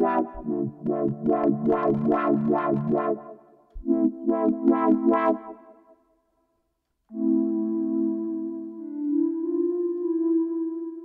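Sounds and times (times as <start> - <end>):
pulsing synthesizer chord: 0.0 - 5.9.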